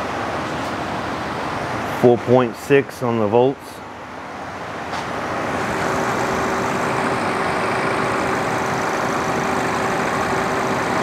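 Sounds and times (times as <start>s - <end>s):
car engine idling with whine: 5.3s - 11.0s.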